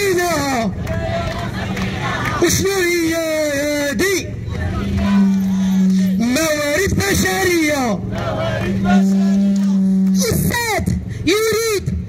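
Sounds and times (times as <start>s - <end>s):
protesters chanting: 0.2s - 3.2s, 4.2s - 10.2s
man shouting: 8.9s - 12.0s.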